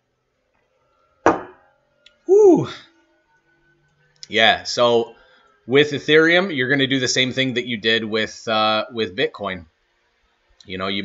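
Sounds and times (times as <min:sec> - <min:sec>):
cup set down on desk: 0:01.3 - 0:01.6.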